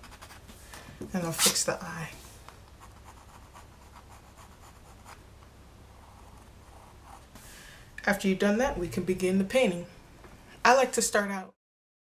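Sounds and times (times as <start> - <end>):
pencil scratching on canvas: 0.0 - 0.5, 1.2 - 1.7, 2.8 - 5.2, 6.0 - 7.4.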